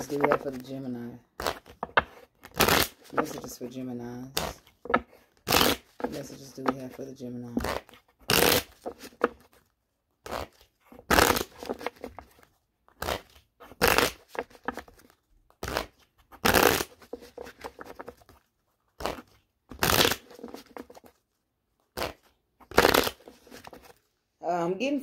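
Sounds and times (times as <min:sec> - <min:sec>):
cards riffle shuffling: 0:00.0 - 0:03.8, 0:04.4 - 0:21.2, 0:22.0 - 0:24.0.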